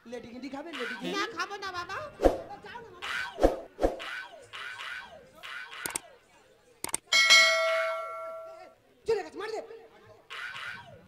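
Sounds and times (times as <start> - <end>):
quick clicks: 5.8 - 6.0, 6.8 - 7.0
metal bell ringing: 7.1 - 8.6.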